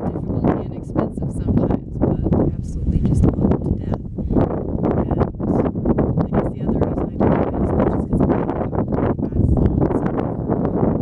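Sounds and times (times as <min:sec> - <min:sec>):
woman talking: 0:00.0 - 0:04.1, 0:05.0 - 0:05.6, 0:06.2 - 0:10.7
wind buffeting microphone: 0:00.0 - 0:11.0.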